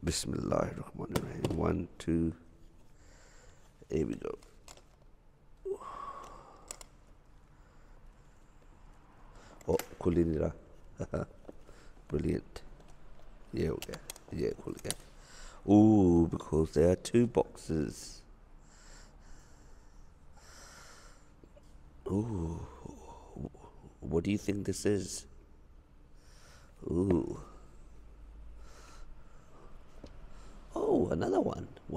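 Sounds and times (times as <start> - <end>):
faint breathing: 2.9 - 3.9, 5.6 - 9.7, 11.6 - 12.1, 15.0 - 15.7, 18.5 - 24.0, 26.1 - 30.8.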